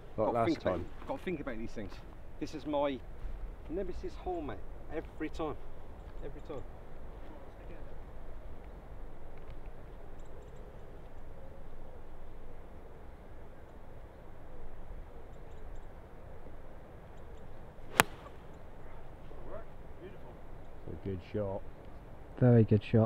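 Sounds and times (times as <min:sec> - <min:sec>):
golf club striking ball: 0:17.9 - 0:18.7.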